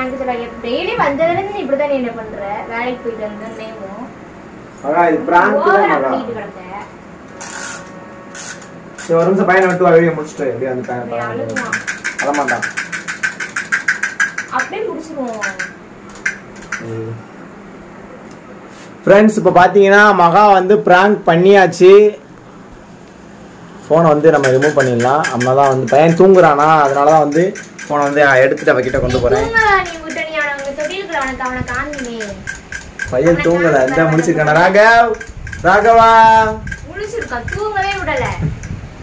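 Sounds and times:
voices: 0:00.0 - 0:07.9, 0:09.0 - 0:17.4, 0:23.8 - 0:38.8
rapid rattle clicking: 0:10.8 - 0:16.9, 0:24.2 - 0:38.9.

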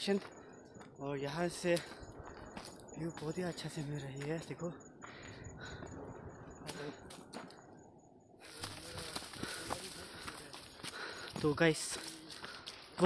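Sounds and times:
footsteps on dirt trail: 0:00.0 - 0:13.0.

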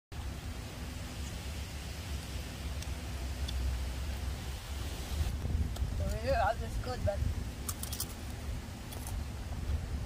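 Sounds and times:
wind rumbling on microphone: 0:00.2 - 0:10.0.

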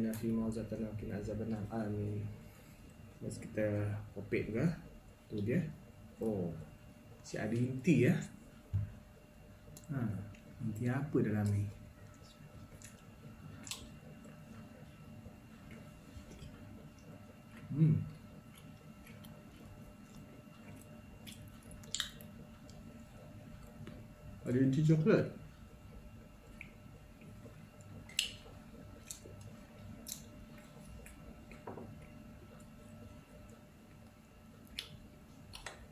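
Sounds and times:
faint chewing: 0:08.8 - 0:24.3, 0:25.4 - 0:35.9
wet mouth sounds: 0:12.0 - 0:14.8, 0:15.6 - 0:23.8, 0:26.4 - 0:32.8, 0:34.6 - 0:35.9.

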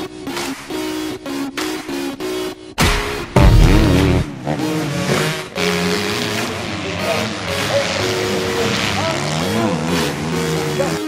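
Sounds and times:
motocross engines revving: 0:03.4 - 0:11.0.

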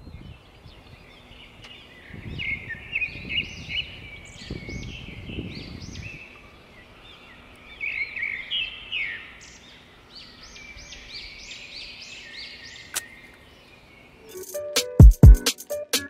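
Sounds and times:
faint background hiss: 0:00.0 - 0:15.0
birds chirping: 0:00.0 - 0:16.0
music with strong beat: 0:14.3 - 0:16.0.

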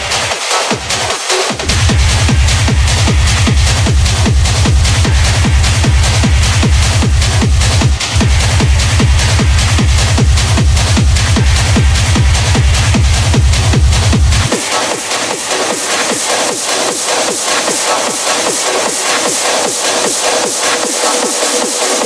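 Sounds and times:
fast kick drum: 0:00.0 - 0:22.0
hard techno dj mix: 0:00.0 - 0:22.0.

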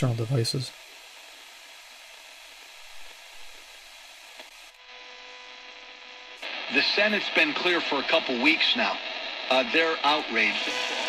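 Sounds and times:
radio talk voice: 0:00.0 - 0:00.7, 0:06.4 - 0:11.0
radio static hiss: 0:00.0 - 0:11.0.

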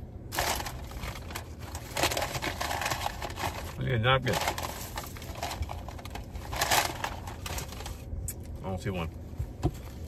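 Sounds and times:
paper bag rustling: 0:00.3 - 0:08.1.

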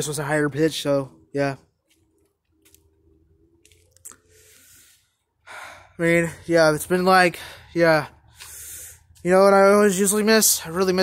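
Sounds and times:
sharp breath in: 0:04.3 - 0:05.9, 0:08.3 - 0:09.1
breathing close to microphone: 0:04.3 - 0:06.0, 0:07.4 - 0:09.2.

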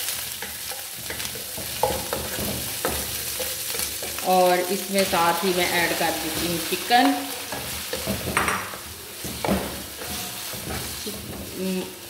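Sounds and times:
food sizzling in hot oil: 0:00.0 - 0:12.0
wooden spoon scraping pan: 0:00.4 - 0:12.0.

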